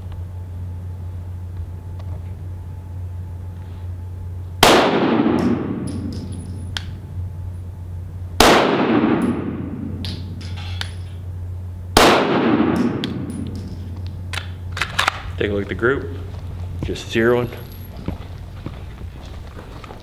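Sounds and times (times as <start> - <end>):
pistol shots echoing indoors: 4.6 - 6.3, 8.4 - 10.3, 12.0 - 13.7.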